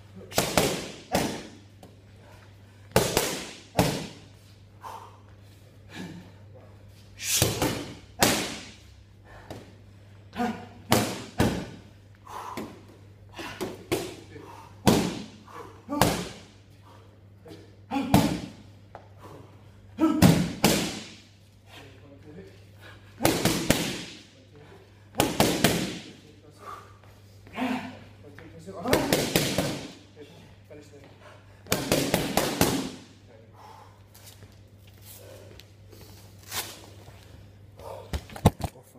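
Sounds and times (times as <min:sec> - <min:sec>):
boxing gloves slapping mitts: 0:00.3 - 0:01.9, 0:02.9 - 0:04.3, 0:07.2 - 0:08.8, 0:10.8 - 0:11.8, 0:12.6 - 0:16.5, 0:18.0 - 0:19.0, 0:20.0 - 0:21.3, 0:23.1 - 0:24.3, 0:25.1 - 0:26.2, 0:28.8 - 0:30.0, 0:31.6 - 0:33.1.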